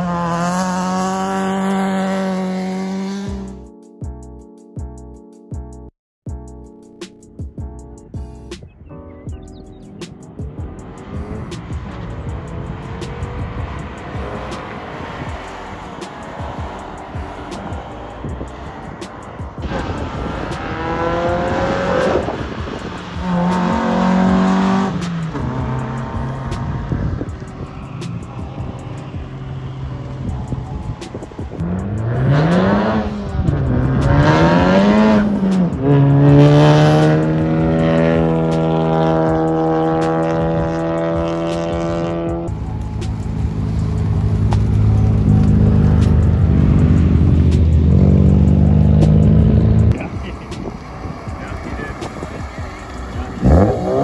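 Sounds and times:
car engines revving: 0.0 - 3.6, 9.5 - 54.0
deep engine drone: 28.4 - 50.4.

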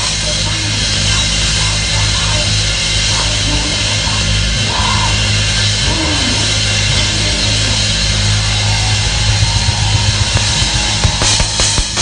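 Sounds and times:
cymbals: 3.9 - 12.0
drum hits: 8.3 - 12.0.

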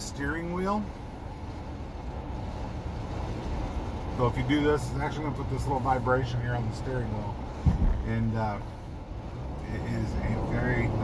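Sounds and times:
road and wind noise in car cabin: 0.0 - 11.0.

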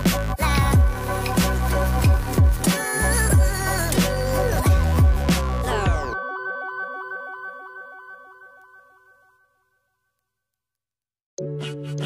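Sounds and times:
background music repeating notes: 0.0 - 9.4, 11.4 - 12.0.

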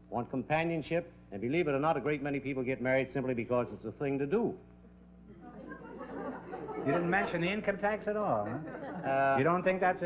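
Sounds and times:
man speaking: 0.1 - 4.6, 6.8 - 10.0
audience chuckling and murmuring: 5.2 - 9.5.

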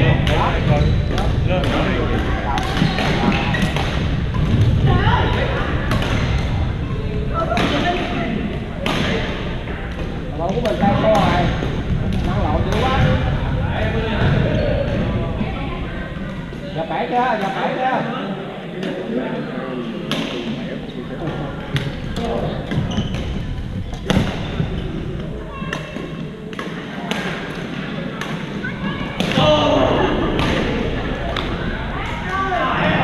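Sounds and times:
players' voices and chatter: 0.0 - 33.0
rackets hitting shuttlecock: 0.2 - 4.7, 5.9 - 6.6, 8.8 - 13.3, 21.7 - 29.5, 30.2 - 32.2.

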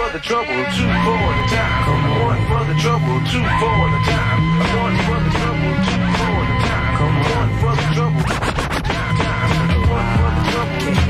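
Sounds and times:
hip-hop beat: 0.0 - 11.0
vinyl record scratching: 0.0 - 11.0.

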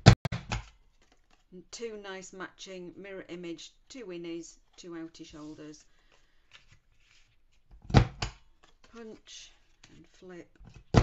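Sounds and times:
paper being handled: 5.2 - 7.7.

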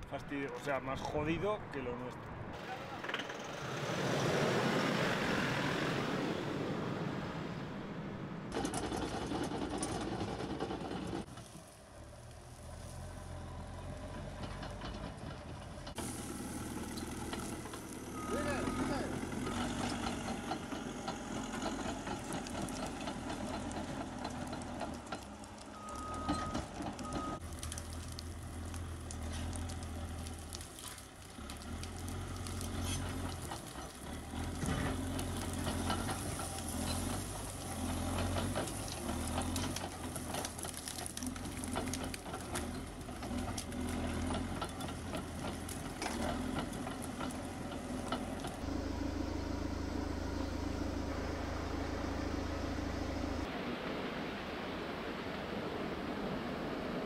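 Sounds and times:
bulldozer diesel engine: 2.6 - 53.7
tracks and blade clanking: 16.8 - 27.4.

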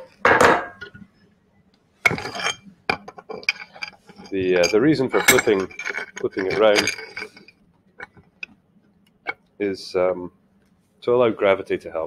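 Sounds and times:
metallic clatter: 2.0 - 8.5.

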